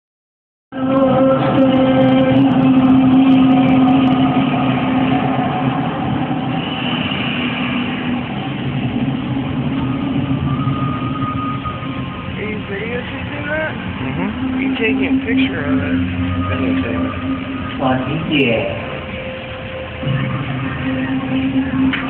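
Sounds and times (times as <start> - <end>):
low droning tone: 0.7 - 22.0
background hubbub: 0.8 - 22.0
voices: 12.4 - 21.7.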